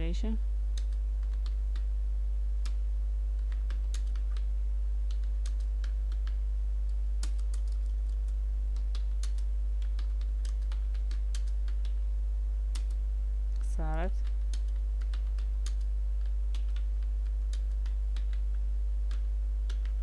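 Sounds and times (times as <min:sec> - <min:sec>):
steady low hum: 0:00.0 - 0:20.0
computer keyboard typing: 0:00.7 - 0:01.9, 0:03.4 - 0:04.5, 0:05.1 - 0:12.0, 0:12.7 - 0:13.0, 0:14.2 - 0:20.0.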